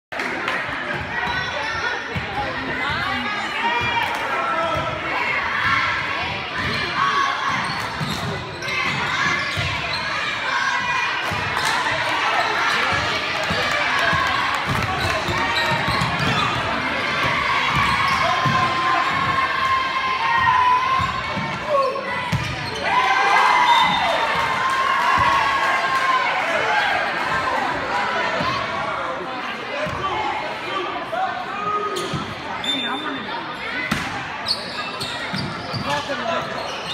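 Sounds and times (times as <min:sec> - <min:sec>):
voices of players and spectators: 0:00.1 - 0:36.9.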